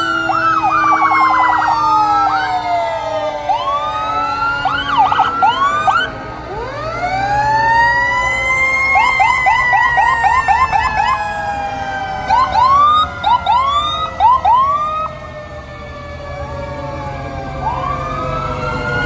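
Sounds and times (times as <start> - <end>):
siren yelping chirps: 0.0 - 15.2
fire truck sirens wailing: 0.0 - 19.0
siren whoops: 0.0 - 19.0.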